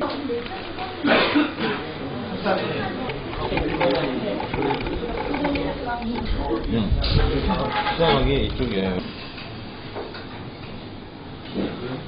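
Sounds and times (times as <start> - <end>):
people chattering: 0.0 - 9.1.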